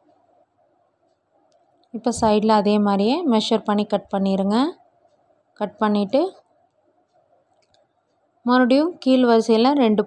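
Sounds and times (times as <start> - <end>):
faint ticks: 0.0 - 2.0, 4.8 - 5.6, 6.3 - 8.5
person speaking: 2.0 - 4.7, 8.5 - 10.0.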